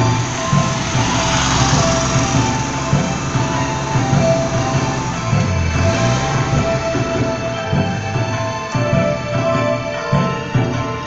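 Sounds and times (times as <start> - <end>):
clock melody from loudspeaker: 0.0 - 11.0
rushing background noise: 0.0 - 11.0.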